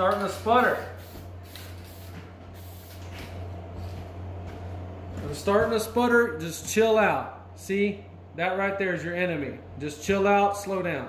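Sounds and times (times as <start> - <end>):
steady low hum: 0.0 - 11.0
spray can hissing: 0.4 - 3.1.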